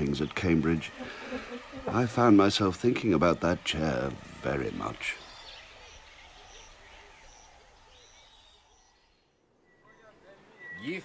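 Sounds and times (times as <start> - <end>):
animal calls: 4.4 - 9.1
high bird chirps: 5.0 - 11.0.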